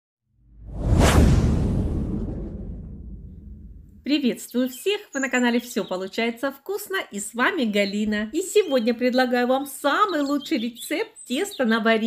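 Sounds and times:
whoosh sound effect: 0.5s - 4.0s.

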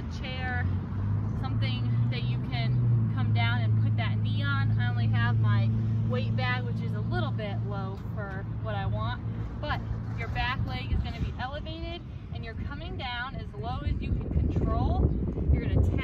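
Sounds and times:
woman talking: 0.0s - 0.7s, 1.4s - 16.0s.

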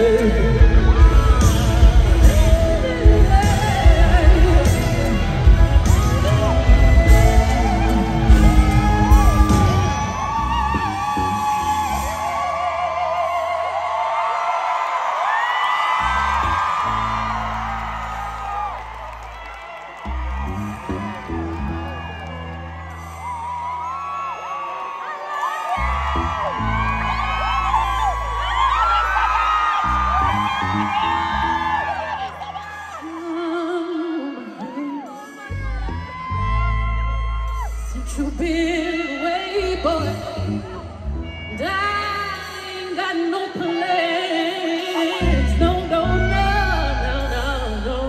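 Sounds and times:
held bass notes: 0.0s - 13.0s
person singing: 0.0s - 14.6s, 29.8s - 36.9s, 37.7s - 48.0s
crowd whooping: 0.0s - 48.0s.

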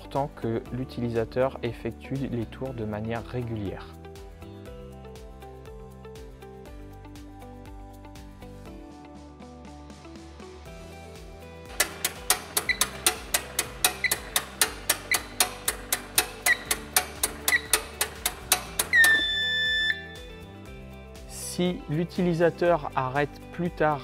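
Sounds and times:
background music: 0.0s - 24.0s
fast mechanical clicking: 11.7s - 19.4s
long steady beep: 18.9s - 20.2s
short high electronic chirp: 18.9s - 20.2s.

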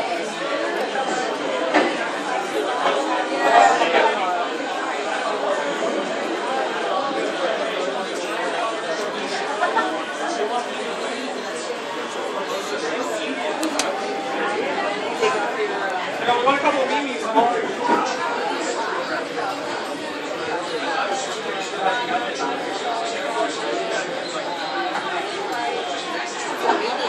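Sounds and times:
background chatter of voices: 0.0s - 27.0s.

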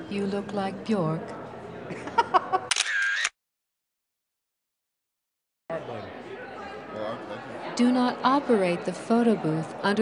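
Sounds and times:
camera shutter clicks: 2.7s - 3.4s.

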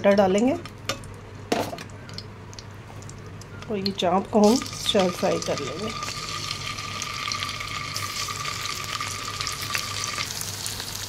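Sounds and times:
food sizzling in hot oil: 4.4s - 11.0s.

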